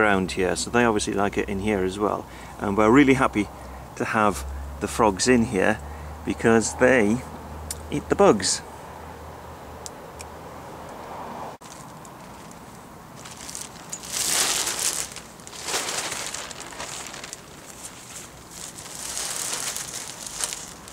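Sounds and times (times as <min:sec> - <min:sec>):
crinkling rustling: 0:11.6 - 0:20.9.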